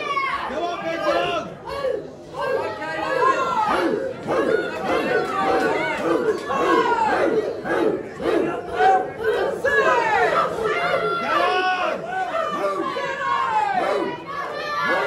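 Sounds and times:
crowd yelling and shouting: 0.0 - 15.0.

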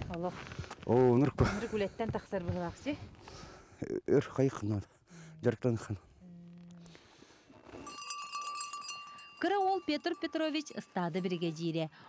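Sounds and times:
small metal bell jingling: 7.8 - 12.0.

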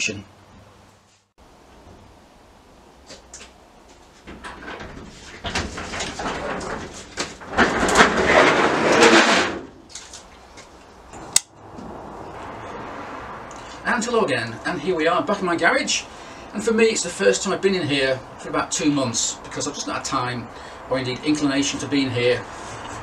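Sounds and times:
garage door sliding rumble: 4.2 - 9.9
sharp click: 11.3 - 11.5.

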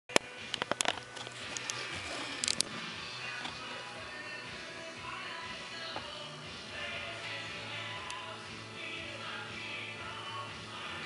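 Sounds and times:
background music: 0.1 - 11.0.

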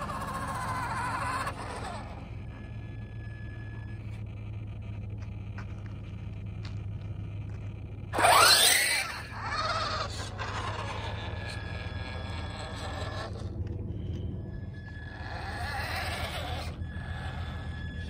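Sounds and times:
toy truck motor whining: 0.0 - 4.9, 8.1 - 13.5, 14.5 - 18.0.

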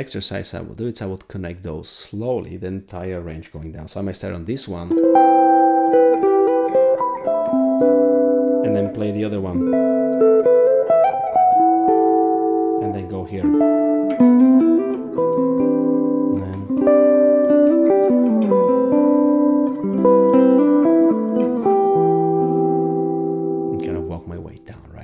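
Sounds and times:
electric jazz guitar chords: 4.9 - 24.4.

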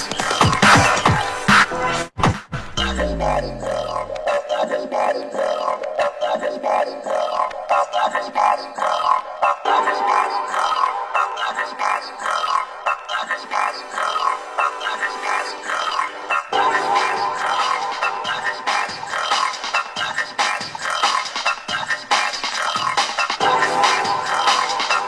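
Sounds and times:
breakbeat electronic music: 0.0 - 25.0.

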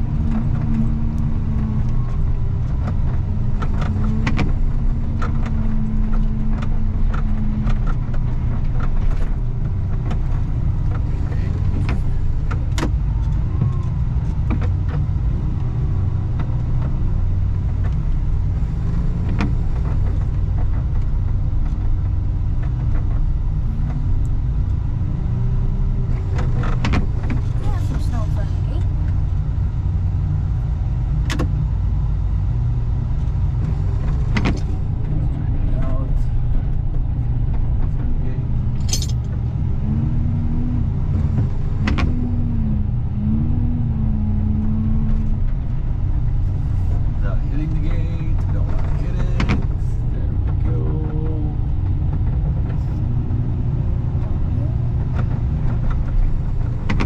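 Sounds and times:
diesel engine droning under load: 0.0 - 57.0
metal clanks and rattles: 33.6 - 39.5.

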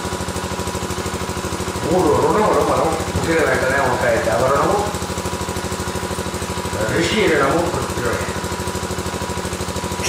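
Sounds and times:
rapid mechanical pulsing: 0.0 - 10.0.

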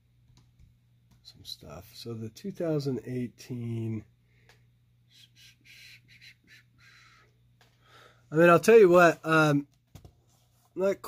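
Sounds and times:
steady low hum: 0.0 - 10.8
soft rustling: 9.9 - 10.8.

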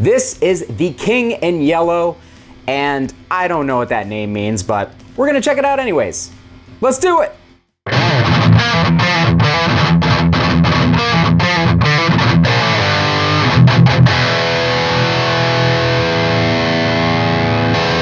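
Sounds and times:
distorted electric guitar riff: 7.9 - 18.0.

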